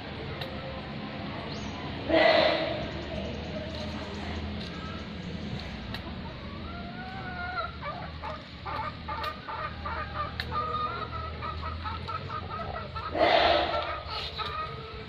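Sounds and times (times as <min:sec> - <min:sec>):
parrots whistling and chattering: 0:06.0 - 0:15.0.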